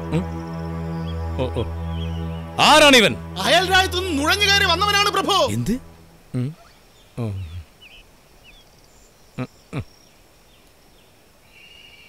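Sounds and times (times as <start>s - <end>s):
vocal grunts: 6.3s - 7.7s
faint bird chirps: 6.3s - 12.0s.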